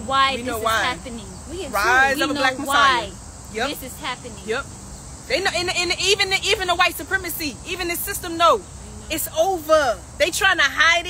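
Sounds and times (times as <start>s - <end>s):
woman talking emphatically: 0.0s - 4.7s, 5.3s - 11.0s.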